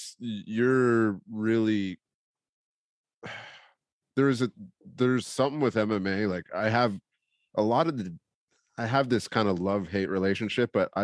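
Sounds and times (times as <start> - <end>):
man breathing out: 3.2 - 3.8.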